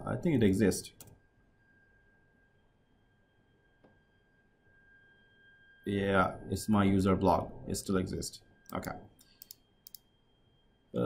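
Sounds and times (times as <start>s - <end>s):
faint high-pitched tone: 0.0s - 11.0s
faint click: 8.7s - 10.1s.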